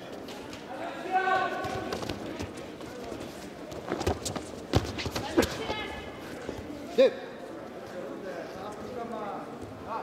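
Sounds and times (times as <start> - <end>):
echoing shouts and chatter: 0.0 - 3.2, 5.1 - 8.2.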